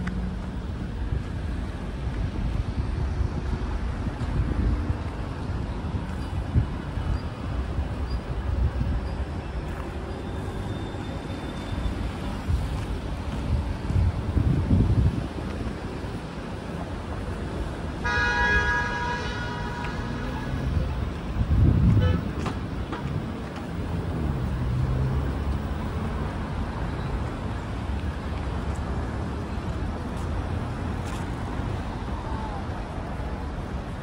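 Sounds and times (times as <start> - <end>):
cars and scooters passing: 0.0 - 34.0
vehicle horn honking: 18.0 - 20.6, 21.9 - 22.3.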